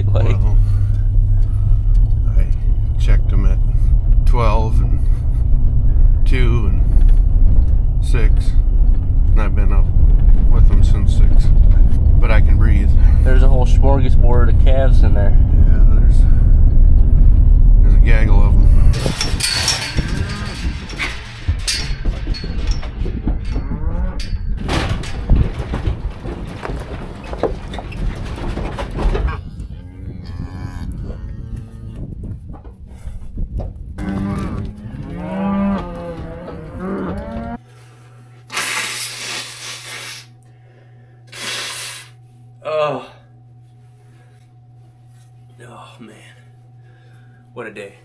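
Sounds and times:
low rumble inside truck cab: 0:00.0 - 0:41.3
electrical hum: 0:00.0 - 0:48.0
cows mooing: 0:23.4 - 0:24.4, 0:29.3 - 0:32.1, 0:34.0 - 0:37.6
man blowing his nose: 0:38.5 - 0:40.3, 0:41.3 - 0:42.2.

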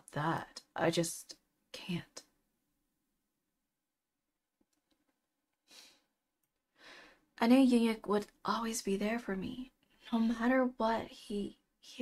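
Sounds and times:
woman speaking: 0:07.4 - 0:12.0.

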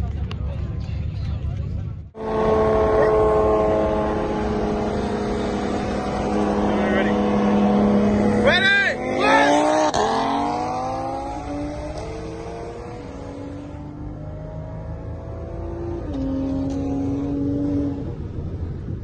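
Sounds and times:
car engines accelerating: 0:00.0 - 0:19.0.

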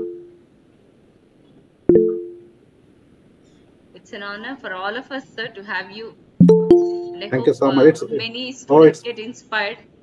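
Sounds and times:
bell-like notification chime: 0:06.4 - 0:07.4.

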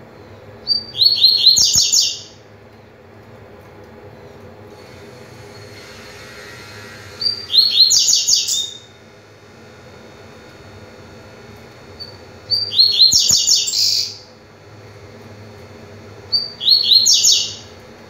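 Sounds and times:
songbird singing fast high notes: 0:07.2 - 0:08.9, 0:12.0 - 0:14.2, 0:16.3 - 0:17.6.

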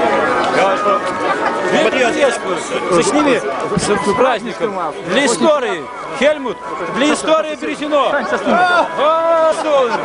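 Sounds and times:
men talking at once: 0:00.6 - 0:10.0.

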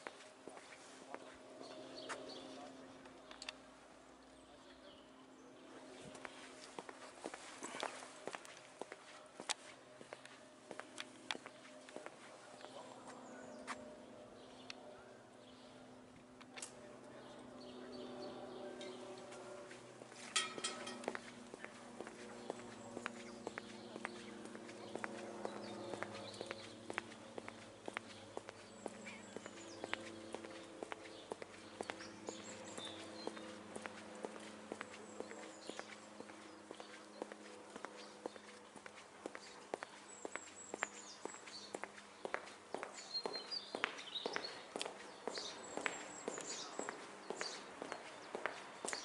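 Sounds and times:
footsteps on brick path: 0:00.0 - 0:03.7, 0:05.6 - 0:14.7, 0:18.1 - 0:49.0
birds chirping: 0:00.0 - 0:49.0.

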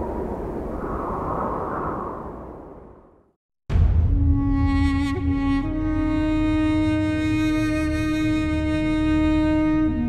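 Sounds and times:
deep rumbling whoosh: 0:00.0 - 0:05.2.

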